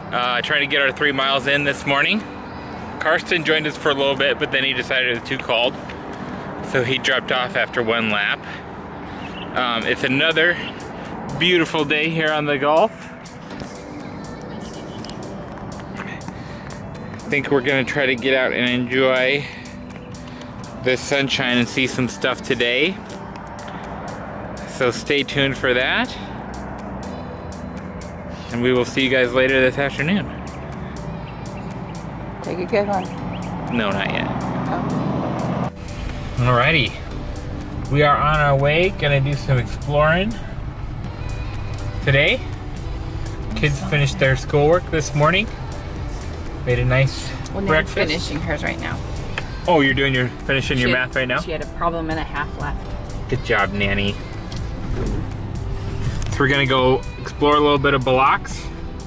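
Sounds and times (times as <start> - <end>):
road traffic rumble: 0.0 - 59.0.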